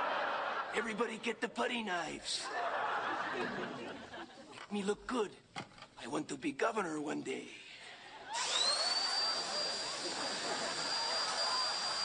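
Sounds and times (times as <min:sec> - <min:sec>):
power drill whine: 0:08.3 - 0:12.0.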